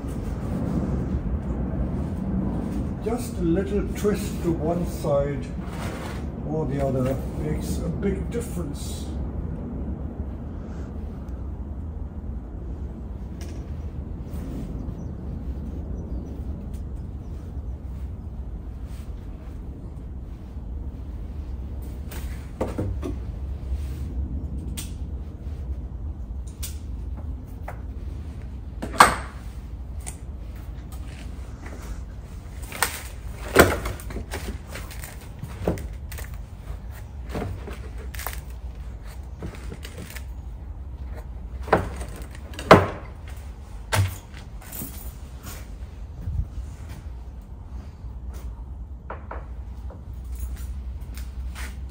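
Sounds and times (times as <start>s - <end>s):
steady low hum: 0.0s - 51.9s.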